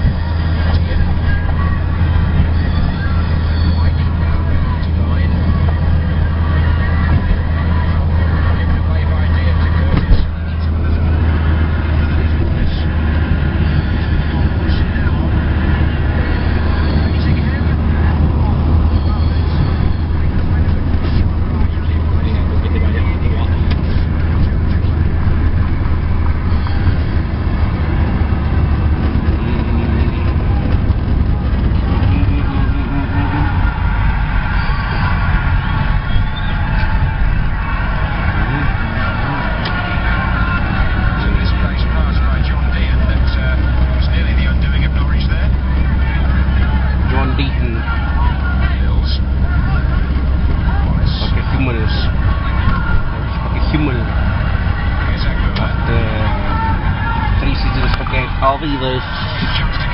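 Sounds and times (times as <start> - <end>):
car engine and tyres drone: 0.0 - 59.9.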